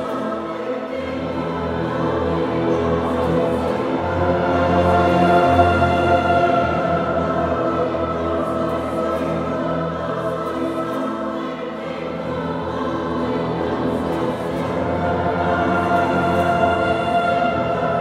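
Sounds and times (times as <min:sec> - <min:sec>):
choir singing: 0:00.0 - 0:18.0
orchestra playing sustained chords: 0:00.0 - 0:18.0.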